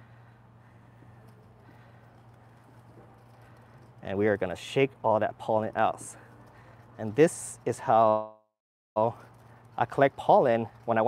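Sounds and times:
steady low hum: 0:00.0 - 0:08.0.

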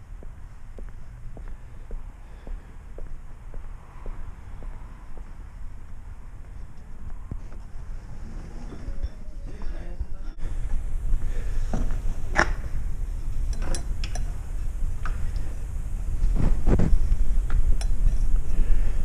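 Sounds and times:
metal and glass clinking: 0:13.4 - 0:14.4.

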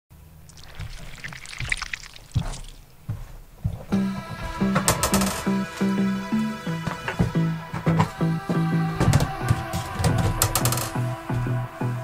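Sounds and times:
crackling rustling noise: 0:00.4 - 0:04.0, 0:09.1 - 0:11.0.

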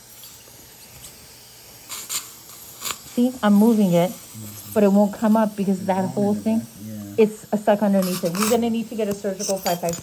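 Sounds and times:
dental suction hissing: 0:00.0 - 0:10.0.

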